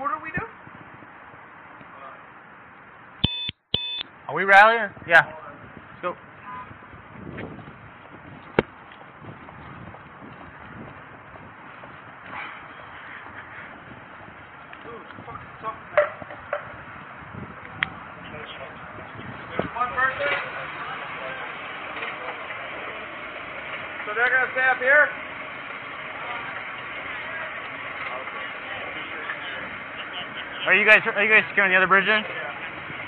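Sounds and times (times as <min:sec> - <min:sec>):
steady background noise: 0:00.0 - 0:33.0
short electronic beeps: 0:03.2 - 0:04.1.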